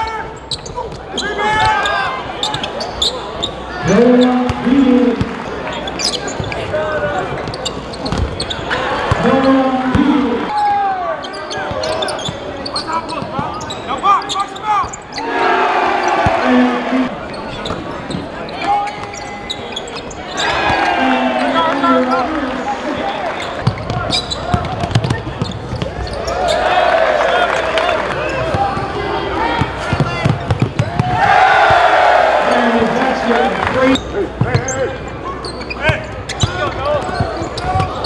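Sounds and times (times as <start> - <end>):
crowd voices: 0.0 - 38.0.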